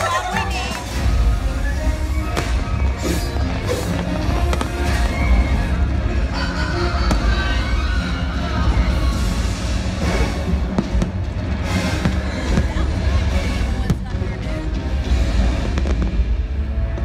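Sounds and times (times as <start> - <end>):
loud music soundtrack: 0.0 - 17.0
fireworks bangs: 2.1 - 6.1, 9.6 - 14.4, 15.1 - 17.0.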